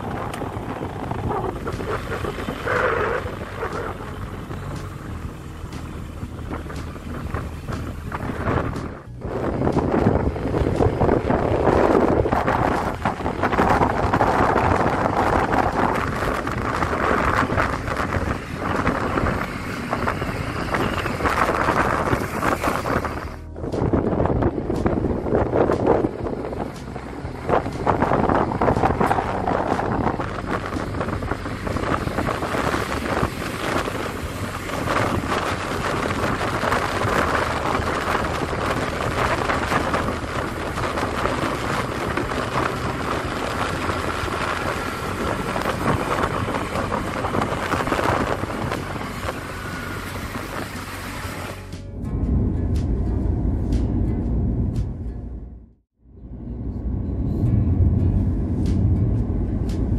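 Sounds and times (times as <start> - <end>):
motorbike engine and road noise: 0.0 - 59.9
road noise inside moving car: 0.0 - 59.9
wind rushing over microphone: 0.0 - 59.9.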